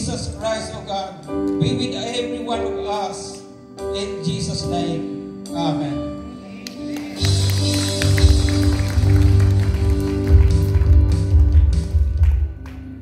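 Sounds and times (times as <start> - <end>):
held keyboard chords: 0.0 - 13.0.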